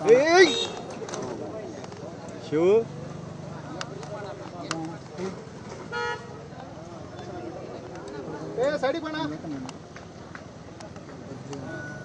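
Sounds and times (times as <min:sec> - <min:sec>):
murmur of voices: 0:00.0 - 0:12.0
vehicle horn toot: 0:00.4 - 0:00.9, 0:05.9 - 0:06.4.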